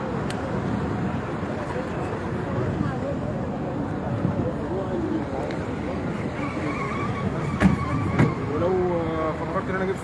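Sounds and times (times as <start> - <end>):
cars: 0.0 - 10.0
faint voices: 0.0 - 10.0.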